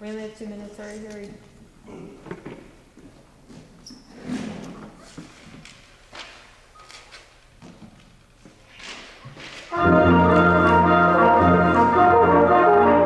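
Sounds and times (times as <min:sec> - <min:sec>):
rustling and shuffling of chairs: 0:00.7 - 0:11.0.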